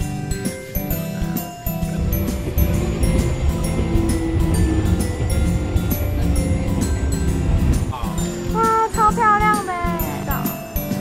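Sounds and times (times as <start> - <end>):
cheerful background music: 0.0 - 11.0
sleigh bells ringing: 0.3 - 11.0.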